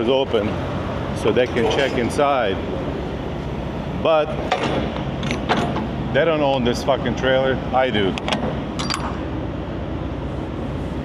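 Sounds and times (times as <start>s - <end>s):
diesel truck engine idling: 0.0s - 5.2s.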